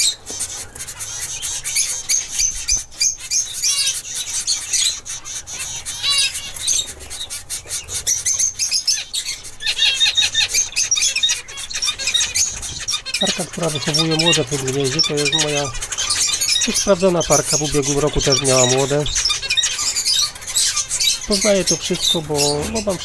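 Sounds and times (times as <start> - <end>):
finches chirping: 0.0 - 23.0
nasal bird calls: 0.0 - 23.0.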